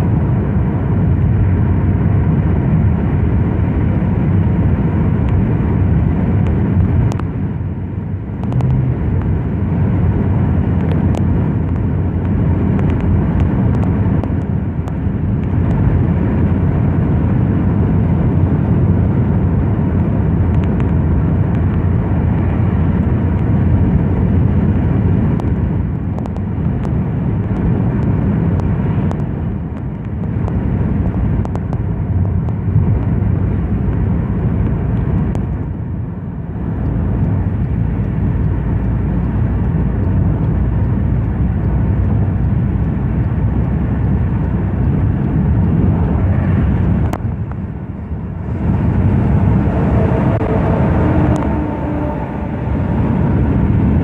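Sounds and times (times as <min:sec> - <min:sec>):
car engine and tyres rumbling: 0:00.0 - 0:54.0.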